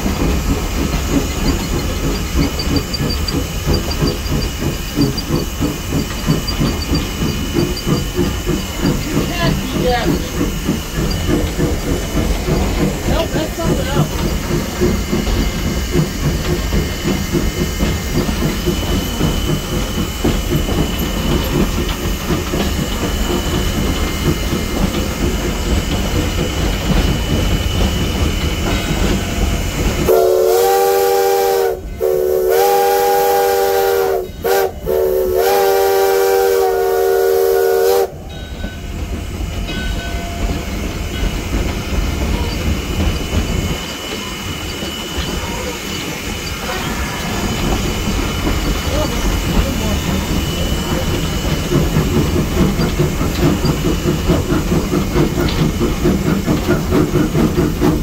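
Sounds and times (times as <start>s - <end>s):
rail clatter: 0.0s - 58.0s
steam hiss: 0.0s - 58.0s
steam locomotive rumble: 0.0s - 58.0s
locomotive whistle chord blasts: 30.1s - 38.2s.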